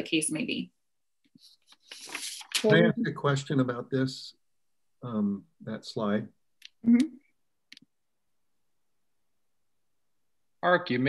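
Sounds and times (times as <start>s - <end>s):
person murmuring: 2.6s - 4.2s.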